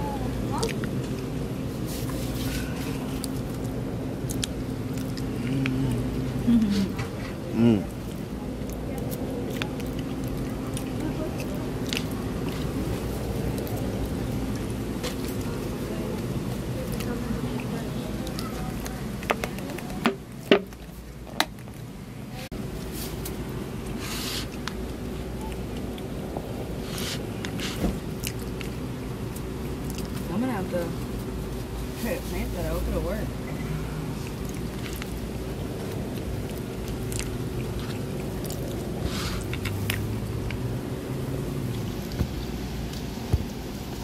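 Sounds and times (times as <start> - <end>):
low background hum: 0.0 - 44.0.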